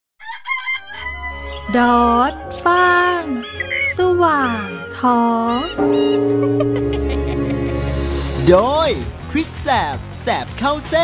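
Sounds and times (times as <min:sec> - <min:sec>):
person singing rooster-style crow: 0:00.2 - 0:05.1.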